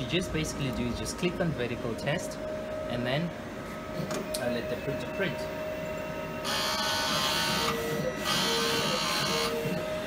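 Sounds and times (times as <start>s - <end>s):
printer carriage running across: 6.4s - 10.0s.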